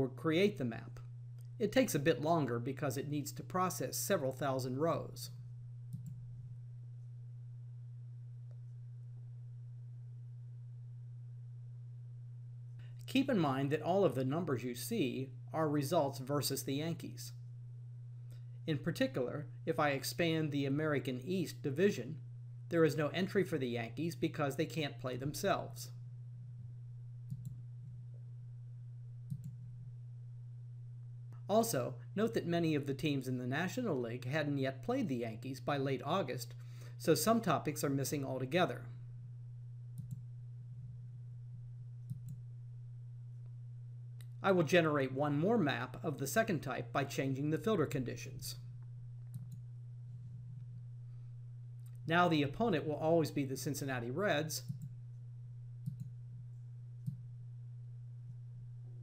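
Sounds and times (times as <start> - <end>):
low electrical hum: 0.0 - 59.0
computer mouse clicks: 5.9 - 6.2, 27.3 - 27.6, 29.3 - 29.6, 49.3 - 49.6, 55.8 - 56.1.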